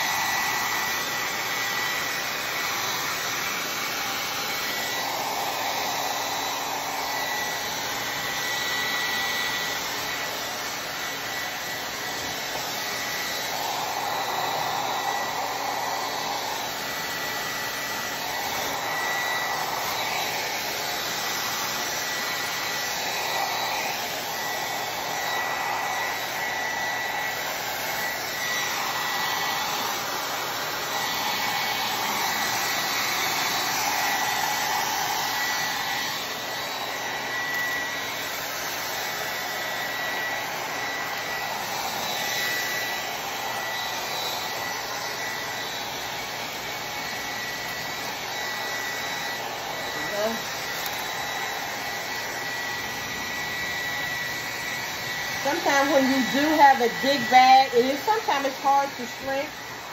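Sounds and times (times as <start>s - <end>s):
hair dryer blowing: 0.0s - 59.9s.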